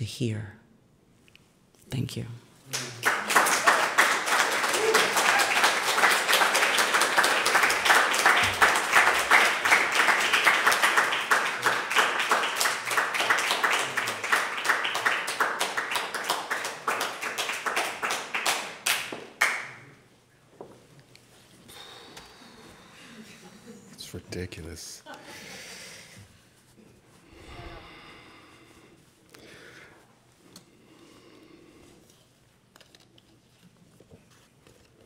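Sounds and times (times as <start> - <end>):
audience applauding: 2.7 - 19.9.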